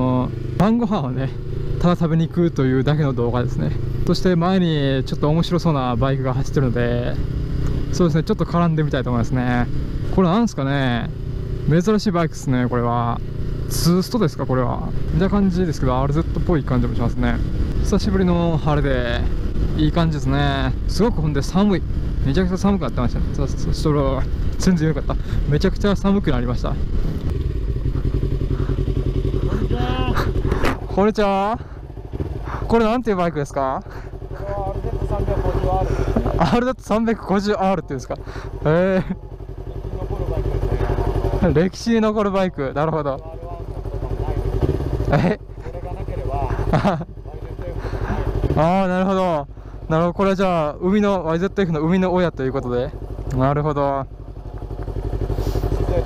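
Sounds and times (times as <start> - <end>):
motorcycle engine running: 0.0 - 56.0
person speaking: 27.8 - 31.8.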